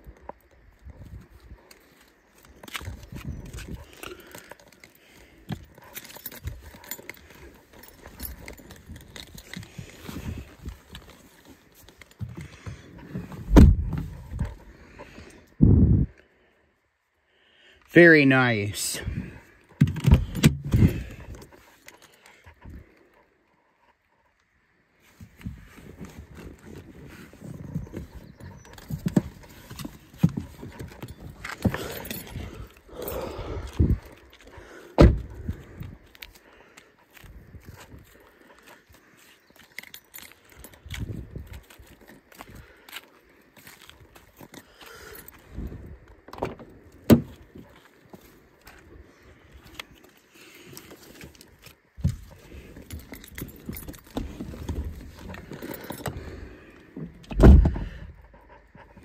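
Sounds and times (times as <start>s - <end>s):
handling noise and rustling: 0.1s - 15.5s, 24.0s - 59.0s.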